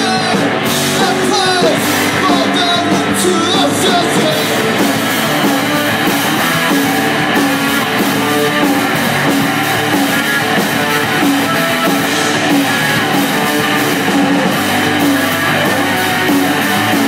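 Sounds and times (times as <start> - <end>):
drum kit with cymbals: 0.0 - 17.0
electric guitar riff: 0.0 - 17.0.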